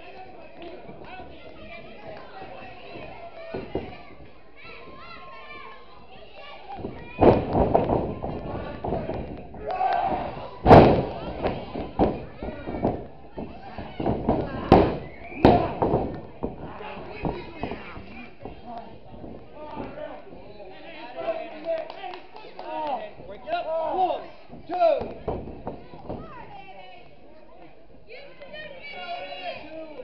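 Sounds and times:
heavy thuds in wrestling ring: 6.8 - 9.3, 10.6 - 16.6.

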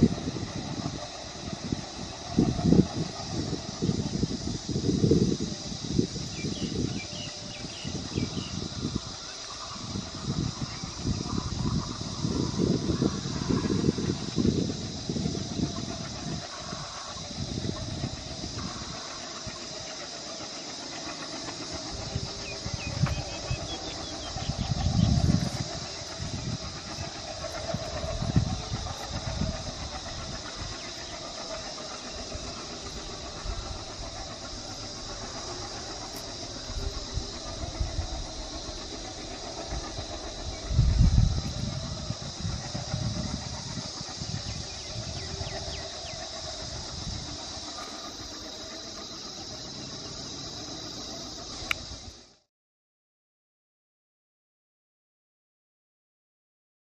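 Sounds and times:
constant high hiss: 0.0 - 52.5
diesel locomotive engine drone: 0.0 - 52.5.

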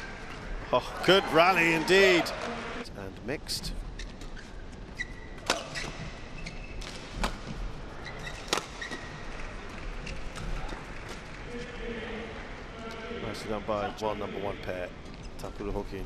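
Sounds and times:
shoes squeaking on court floor: 3.8 - 11.3
badminton rackets striking shuttlecock: 5.4 - 6.1, 8.2 - 9.2.

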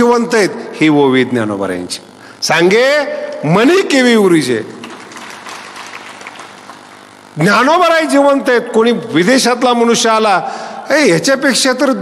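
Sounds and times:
background hiss: 0.0 - 12.0.

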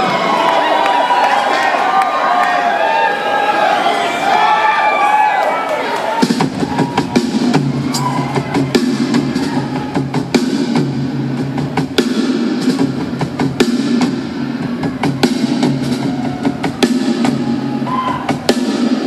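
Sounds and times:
crowd cheering and whooping: 0.0 - 10.2, 15.8 - 18.5
drum kit hits: 6.2 - 19.0.

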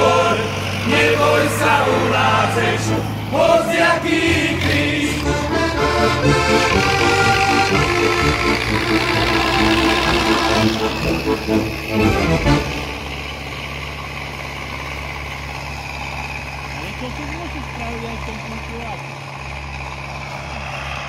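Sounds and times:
song with singing: 0.0 - 5.9
vehicle engine running: 0.0 - 21.0.

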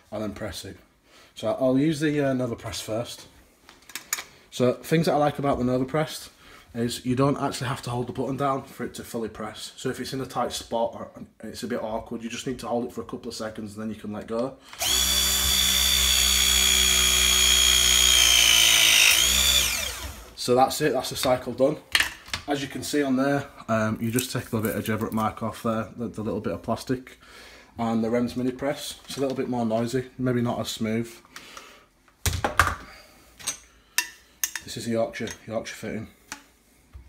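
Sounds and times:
press tool motor whining: 14.7 - 20.4.

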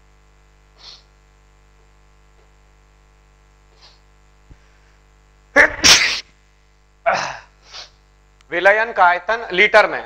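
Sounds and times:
faint mains hum: 0.0 - 10.0
man sneezing: 5.6 - 6.3, 7.0 - 8.0.

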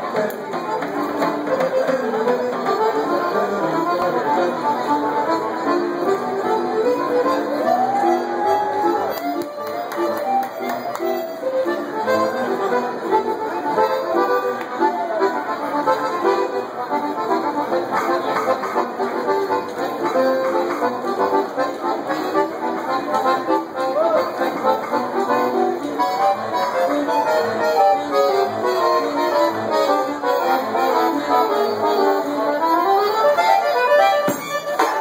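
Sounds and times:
piano accordion melody: 0.0 - 35.0.

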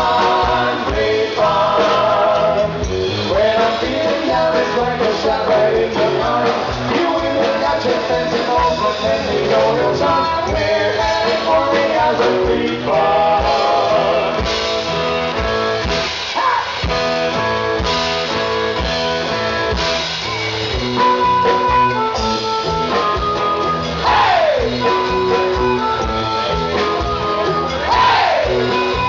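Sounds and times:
drum kit beat: 0.0 - 29.0
electric guitar: 0.0 - 29.0.

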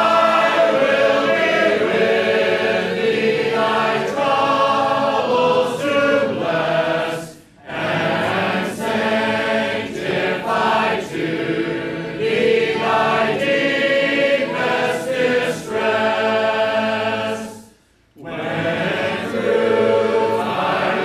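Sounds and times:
congregation singing a hymn: 0.0 - 21.0.

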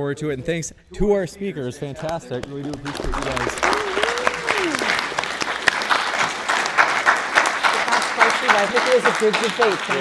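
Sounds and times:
people talking: 0.0 - 5.0, 7.8 - 10.0
crowd clapping: 2.0 - 10.0.

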